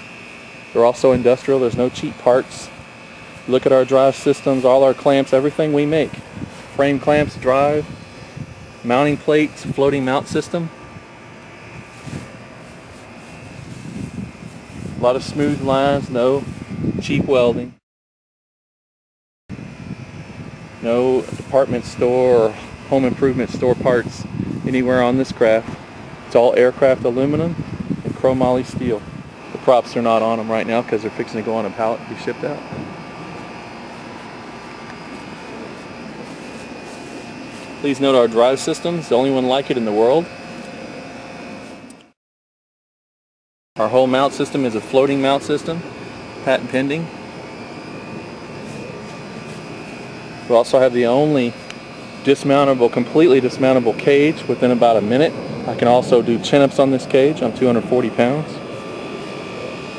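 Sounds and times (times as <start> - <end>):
background hum and hiss: 0.0 - 17.8, 19.5 - 42.2, 43.8 - 59.9
faint high whine: 0.0 - 17.8, 19.5 - 42.2, 43.8 - 59.9
steady background drone: 28.2 - 42.2, 43.8 - 59.9.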